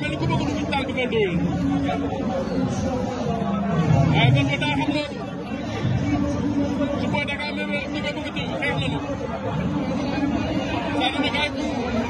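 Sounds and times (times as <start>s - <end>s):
stadium crowd babble: 0.0s - 12.0s.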